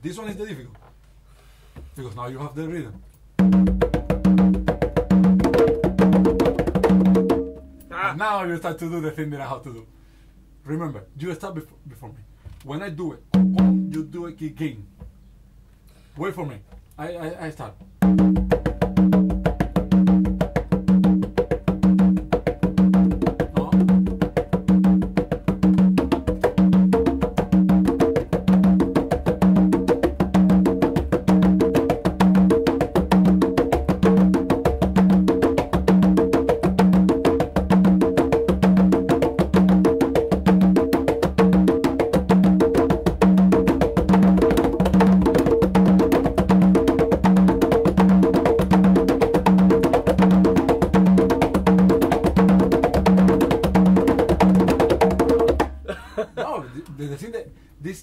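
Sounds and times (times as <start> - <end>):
congas playing rumba rhythm: 1.8 - 9.5, 13.0 - 15.2, 17.2 - 56.0.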